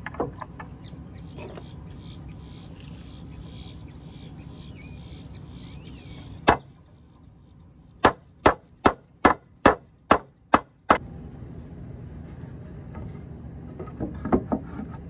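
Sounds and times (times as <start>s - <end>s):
hammer hitting nail into wood: 8.0s - 10.8s.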